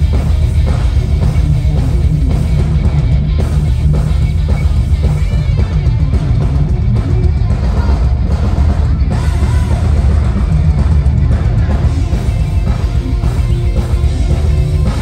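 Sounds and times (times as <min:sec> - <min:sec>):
live metal band playing: 0:00.0 - 0:15.0.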